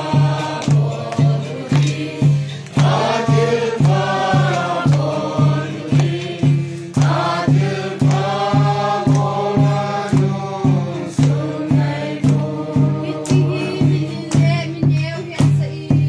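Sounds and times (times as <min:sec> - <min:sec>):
group singing a hymn: 0:00.0 - 0:15.0
drum beating steadily: 0:00.0 - 0:16.0.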